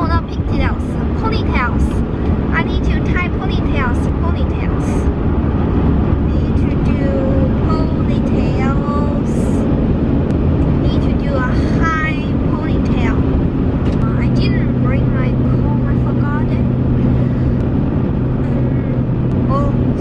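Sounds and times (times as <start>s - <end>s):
car cabin road and engine rumble: 0.0s - 20.0s.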